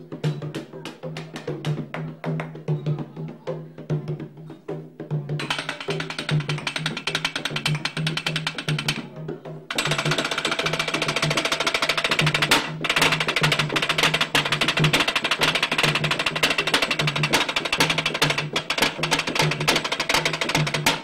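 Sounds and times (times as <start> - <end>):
frame drums played with mallets: 0.0 - 21.0.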